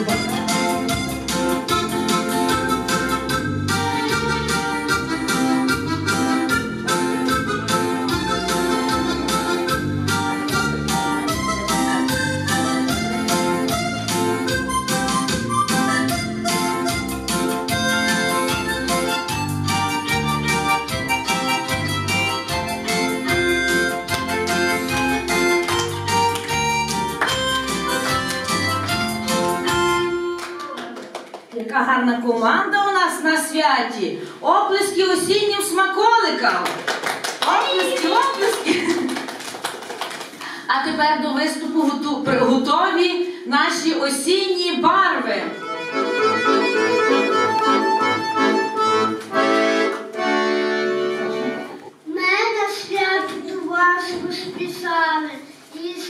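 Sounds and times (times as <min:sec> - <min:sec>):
accordion chords: 0:00.0 - 0:30.8, 0:44.4 - 0:52.1
child's voice: 0:52.0 - 0:56.0.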